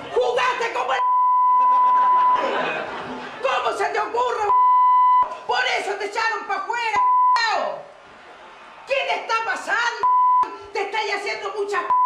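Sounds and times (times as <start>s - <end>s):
censor bleep: 1.0s - 2.4s, 4.5s - 5.3s, 7.0s - 7.4s, 10.0s - 10.5s.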